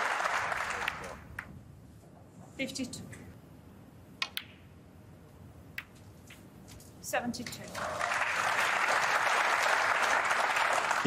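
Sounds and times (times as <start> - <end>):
snooker balls clicking: 4.2 - 4.7, 5.7 - 6.4.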